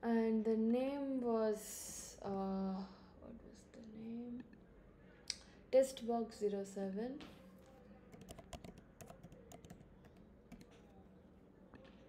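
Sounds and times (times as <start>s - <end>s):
computer keyboard typing: 8.1s - 10.9s.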